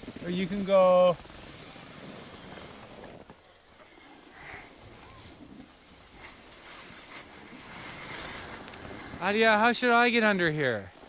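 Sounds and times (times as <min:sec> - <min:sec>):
skis sliding on snow: 0:00.0 - 0:11.0.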